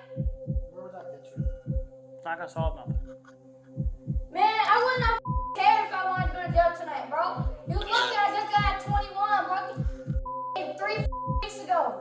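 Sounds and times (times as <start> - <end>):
heartbeat thumps: 0.1 - 0.8, 1.4 - 2.0, 2.6 - 3.2, 3.8 - 6.8, 7.4 - 11.6
person speaking: 7.7 - 9.2.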